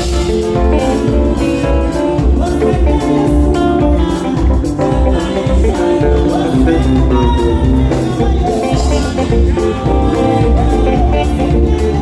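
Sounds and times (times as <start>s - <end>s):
bass and drums: 0.0s - 12.0s
electric guitar line: 0.0s - 12.0s.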